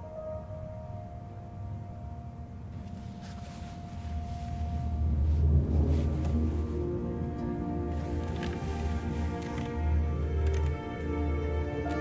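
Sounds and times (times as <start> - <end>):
low rumble: 4.0 - 10.2.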